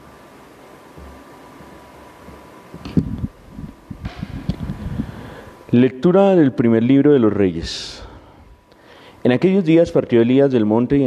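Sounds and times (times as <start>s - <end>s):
low thumps and rustling: 0.9s - 5.3s
microphone handling noise: 2.3s - 5.5s
sharp knock: 4.0s - 4.9s.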